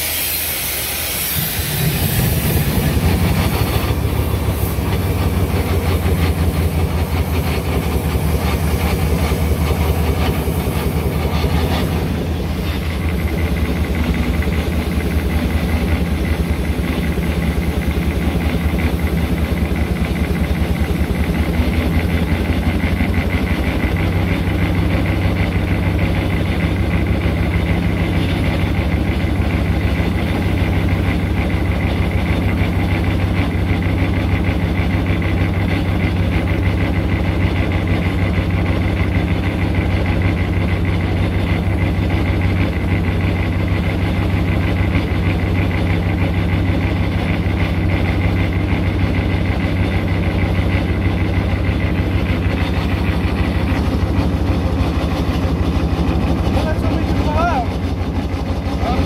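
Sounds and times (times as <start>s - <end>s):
steam wagon engine clatter: 0.0s - 59.0s.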